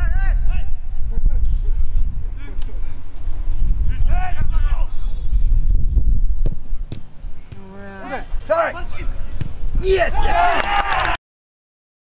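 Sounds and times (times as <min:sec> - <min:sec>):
wind rumble on microphone: 0:00.0 - 0:10.9
players shouting: 0:07.5 - 0:11.2.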